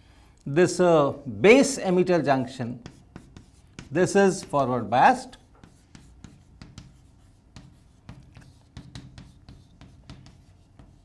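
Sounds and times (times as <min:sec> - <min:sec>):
chalk tapping and scratching on chalkboard: 0:01.7 - 0:11.0.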